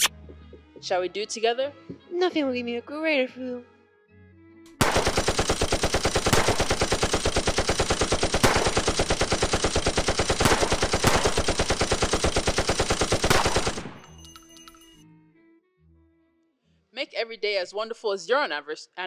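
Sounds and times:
machine-gun fire: 4.8 - 14.2.

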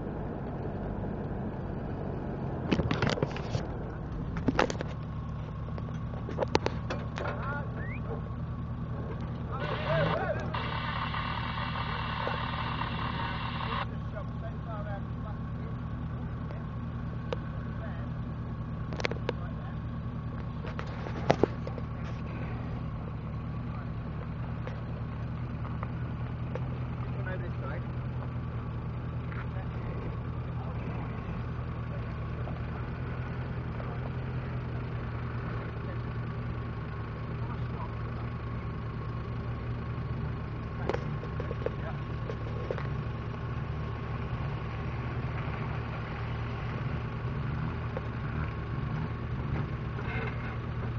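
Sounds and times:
car engine idling: 0.0 - 50.9.

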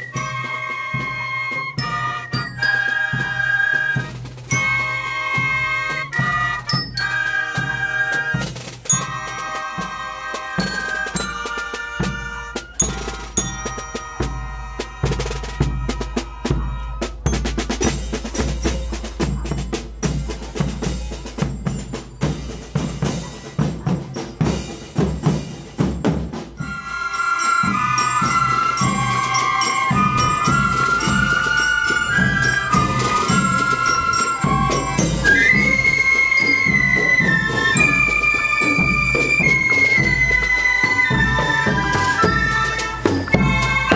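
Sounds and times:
cymbals: 0.0 - 43.9
fifes and melodicas melody: 0.0 - 43.9
snare drum: 0.0 - 43.9
bell lyre: 8.8 - 9.9, 10.6 - 15.1, 17.2 - 43.9.

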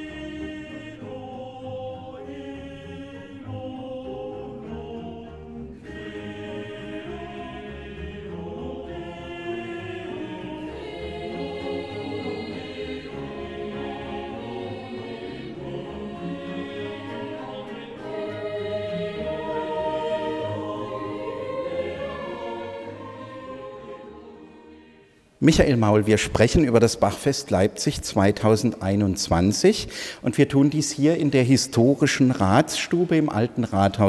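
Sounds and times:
choir singing sustained chords: 0.0 - 26.2.

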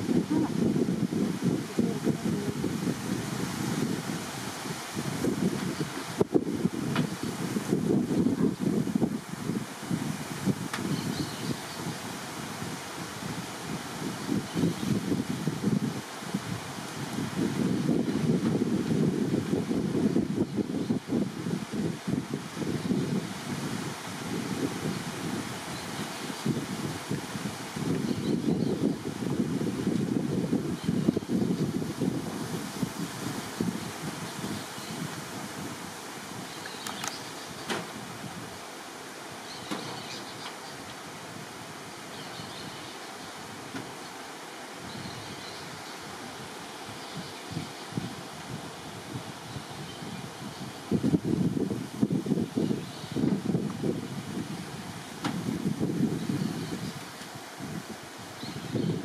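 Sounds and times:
wind buffeting microphone: 0.0 - 44.0, 44.6 - 59.0.

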